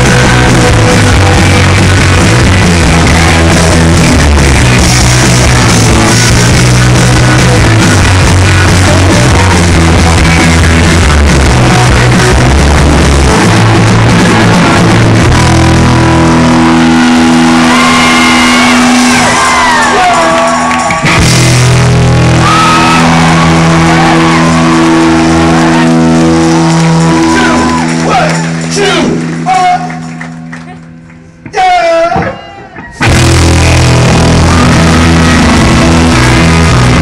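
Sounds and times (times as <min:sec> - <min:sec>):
loud rock band playing: 0:00.0 - 0:37.0.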